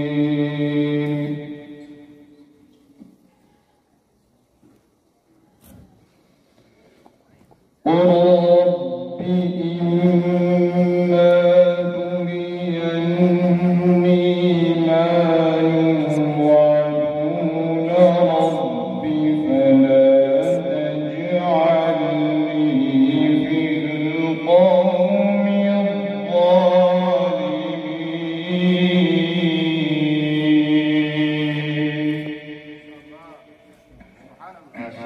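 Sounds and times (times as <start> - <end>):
man reciting melodically: 0.0 - 2.6, 7.8 - 35.0.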